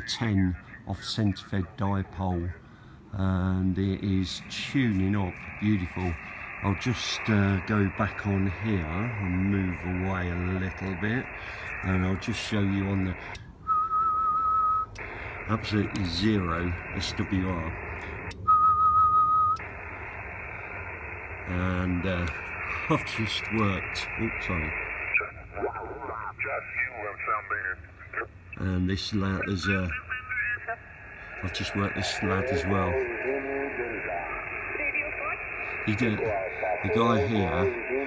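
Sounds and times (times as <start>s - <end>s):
radio band hiss: 0.0s - 13.5s, 14.9s - 18.4s, 19.5s - 38.0s
steady high radio tone: 0.0s - 38.0s
rising whistle: 13.6s - 15.0s, 18.4s - 19.6s.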